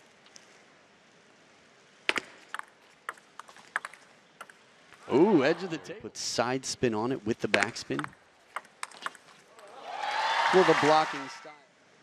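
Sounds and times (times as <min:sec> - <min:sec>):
table tennis ball clicking: 0:02.1 - 0:04.6, 0:07.6 - 0:09.7.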